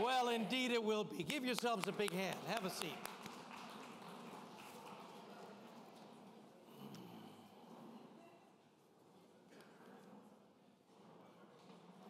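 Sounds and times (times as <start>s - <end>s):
faint audience applause: 1.1s - 6.9s.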